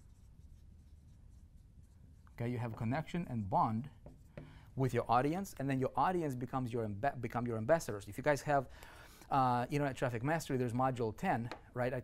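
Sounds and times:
marker scratching on whiteboard: 0.0s - 3.0s, 3.9s - 4.6s.

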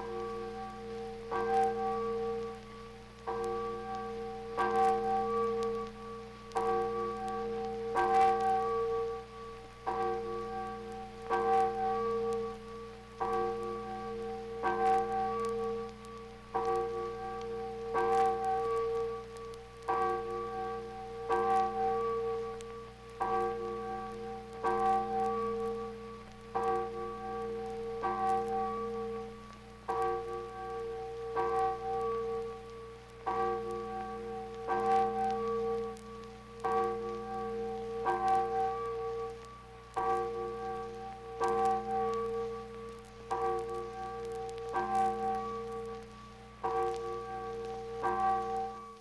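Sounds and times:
church bell tolling: 0.0s - 49.0s
record surface crackle: 0.0s - 49.0s.

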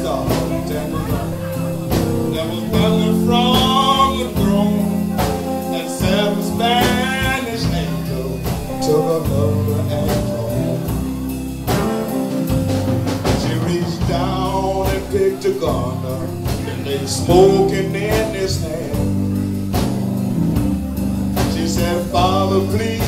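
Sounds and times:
live blues band playing: 0.0s - 23.0s
wavering lead guitar line: 0.0s - 23.0s.

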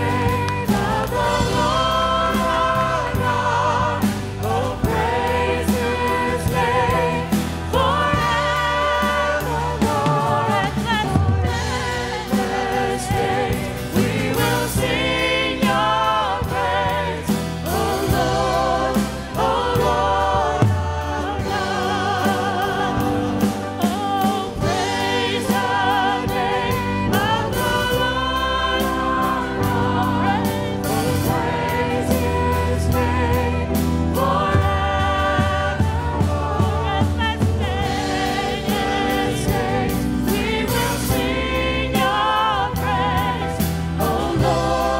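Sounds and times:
choir singing gospel song: 0.0s - 44.9s
instrumental accompaniment: 0.0s - 44.9s.

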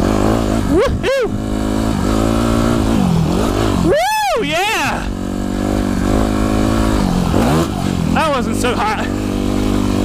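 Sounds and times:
dirt bike engine running: 0.0s - 10.0s
rider whooping: 0.5s - 1.6s, 3.6s - 5.2s.

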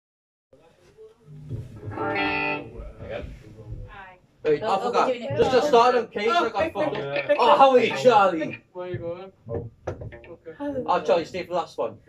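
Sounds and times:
electric bass and guitar: 1.3s - 3.4s.

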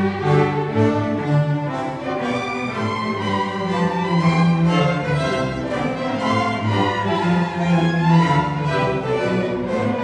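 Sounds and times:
string orchestra playing: 0.0s - 10.0s.

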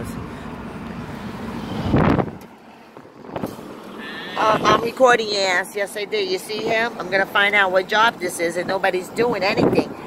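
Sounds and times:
truck road and engine rumble: 0.0s - 10.0s.

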